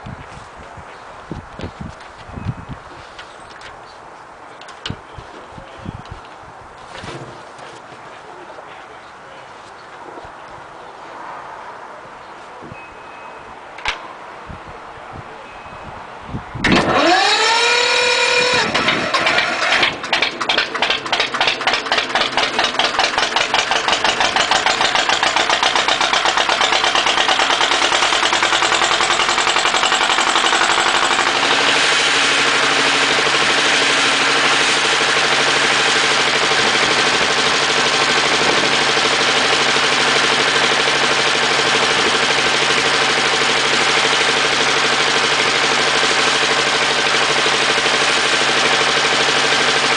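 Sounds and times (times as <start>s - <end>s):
diesel engine running: 16.6s - 49.9s
electric starter whining: 16.6s - 49.9s.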